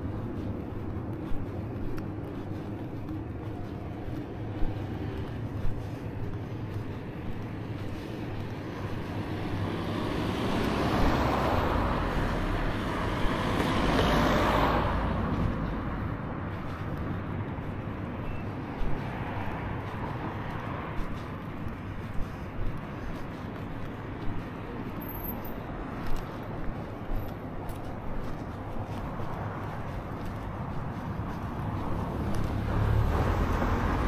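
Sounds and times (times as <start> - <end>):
car passing: 0.0 - 34.0
low traffic rumble: 0.0 - 34.0.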